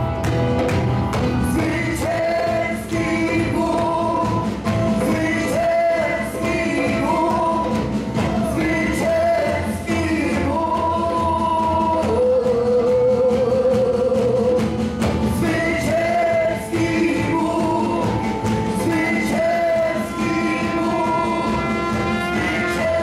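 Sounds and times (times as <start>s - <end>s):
worship band playing: 0.0s - 23.0s.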